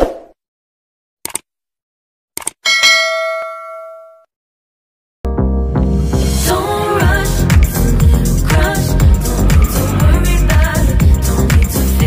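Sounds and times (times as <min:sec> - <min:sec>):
notification bell ding: 0:02.7 - 0:04.3.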